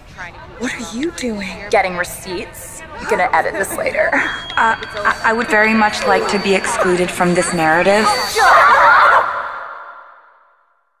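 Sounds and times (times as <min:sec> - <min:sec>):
warbling cry with echo: 0:00.7 - 0:10.4.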